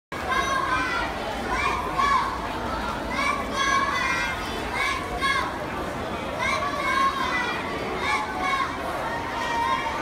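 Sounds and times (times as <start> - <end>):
children cheering and shouting: 0.2 - 5.7, 6.3 - 10.0.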